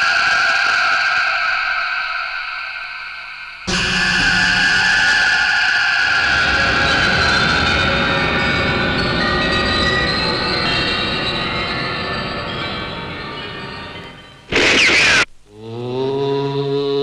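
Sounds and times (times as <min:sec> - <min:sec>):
held high tones: 0:14.5 - 0:15.3.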